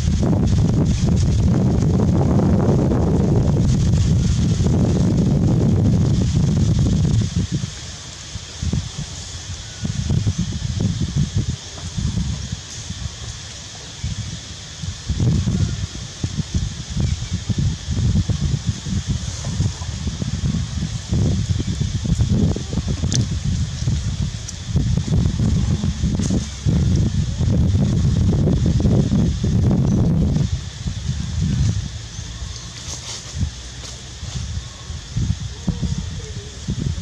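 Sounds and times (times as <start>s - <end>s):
steady high-pitched hiss: 0.0s - 37.0s
wind buffeting microphone: 0.0s - 37.0s.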